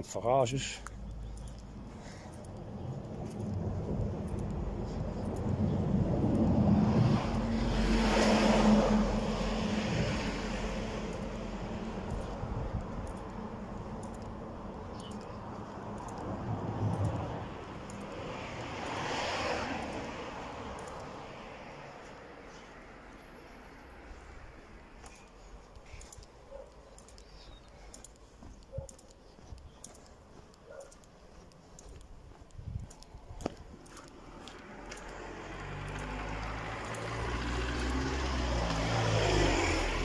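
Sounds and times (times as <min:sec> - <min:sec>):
quieter vehicle passing: 0:00.5 - 0:40.0
car passing: 0:00.6 - 0:27.5, 0:33.6 - 0:40.0.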